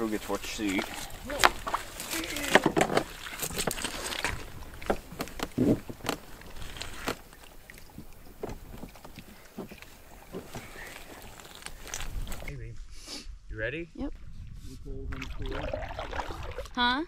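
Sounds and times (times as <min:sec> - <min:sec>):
gear knocking against canoe hull: 0:00.7 - 0:06.4.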